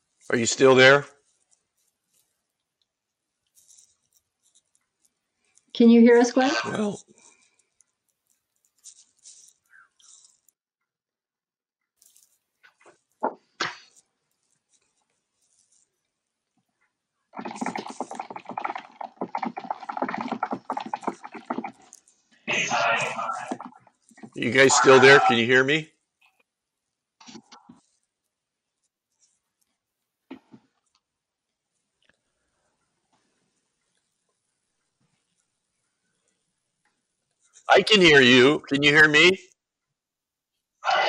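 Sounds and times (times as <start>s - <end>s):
man's garbled voice on video call: 22.5s - 25.9s, 37.7s - 39.4s.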